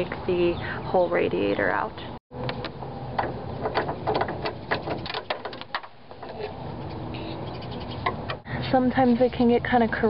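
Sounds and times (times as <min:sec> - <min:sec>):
rubber hose clicking and creaking: 0:02.5 - 0:06.6.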